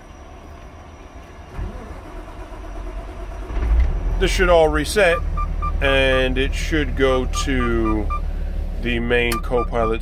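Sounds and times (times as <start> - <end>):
diesel truck engine starting: 0.0 - 10.0.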